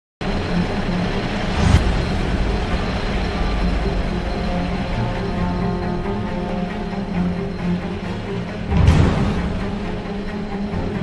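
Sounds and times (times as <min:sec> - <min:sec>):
diesel engine rumbling: 0:00.2 - 0:11.0.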